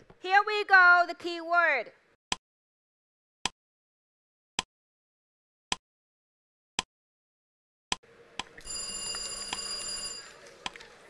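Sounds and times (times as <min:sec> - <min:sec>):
bell-like answer buzzer: 0:08.6 - 0:10.4.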